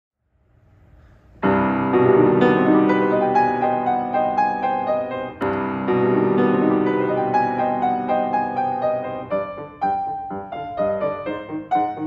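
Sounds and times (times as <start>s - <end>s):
grand piano chord: 1.4s - 12.0s.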